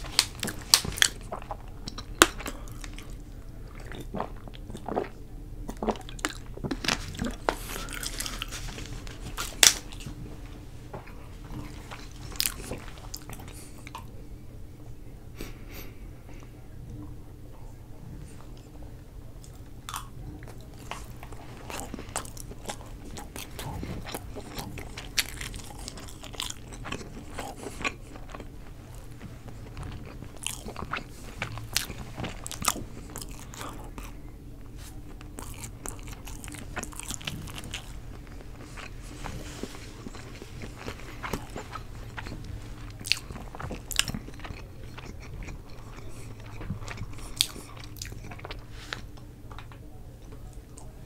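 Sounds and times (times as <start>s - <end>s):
close-miked chewing: 0.0s - 14.3s, 15.4s - 51.0s.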